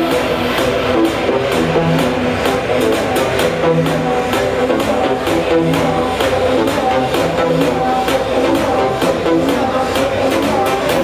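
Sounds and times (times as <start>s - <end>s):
music with steady beat: 0.0s - 11.0s.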